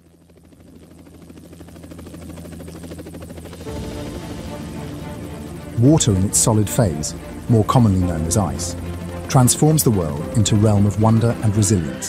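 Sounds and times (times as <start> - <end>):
helicopter rotor chopping: 0.0 - 12.0
music chords: 3.7 - 12.0.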